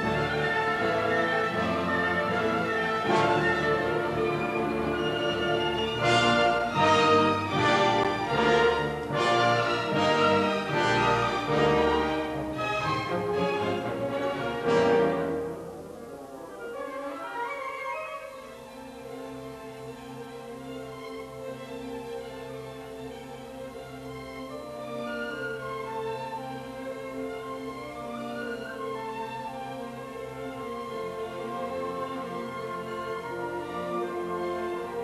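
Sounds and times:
strings and brass chords: 0.0 - 20.6
repeated accented orchestra chords: 0.0 - 35.0
soft woodwind passage: 0.0 - 35.0.

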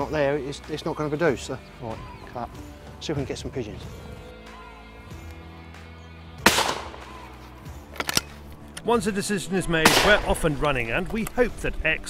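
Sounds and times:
shotgun shot: 6.4 - 7.2, 9.8 - 10.4.

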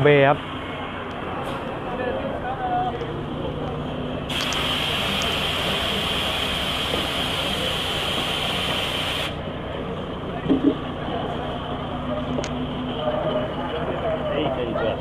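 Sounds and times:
coach engine idling: 0.0 - 15.0
compressed air hissing: 4.3 - 9.4.

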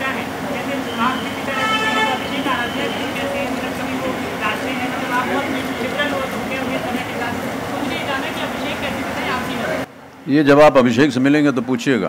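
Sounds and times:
chatter of voices: 0.0 - 9.9
vehicle horn toot: 0.8 - 3.3, 4.8 - 6.2.

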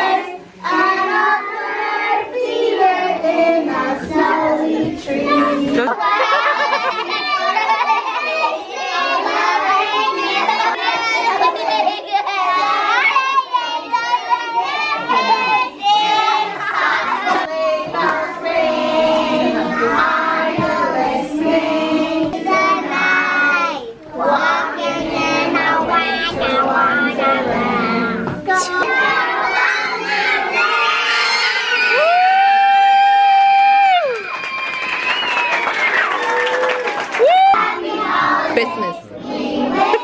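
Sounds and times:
young children singing: 0.0 - 32.2, 35.8 - 40.0.

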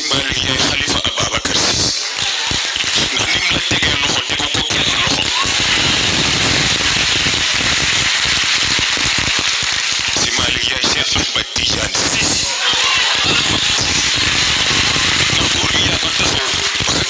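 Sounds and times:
man speaking over loudspeakers: 0.0 - 7.5, 9.9 - 17.0
crowd applauding: 0.0 - 17.0.

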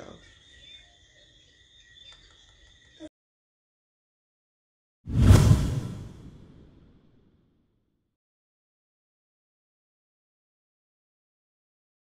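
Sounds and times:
whoosh with deep rumble: 5.1 - 6.9.

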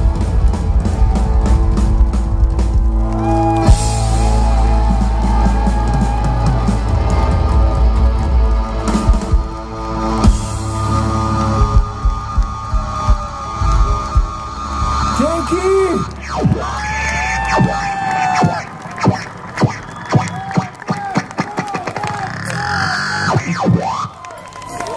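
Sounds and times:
crowd cheering and clapping: 0.0 - 24.9.

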